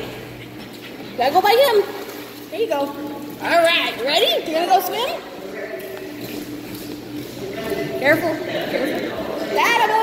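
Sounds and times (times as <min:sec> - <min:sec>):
pool water splashing: 0:00.0 - 0:10.0
steady low hum: 0:00.0 - 0:10.0.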